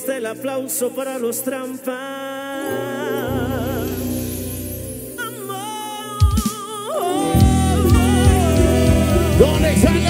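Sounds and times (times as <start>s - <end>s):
person singing a long note: 2.6s - 10.0s.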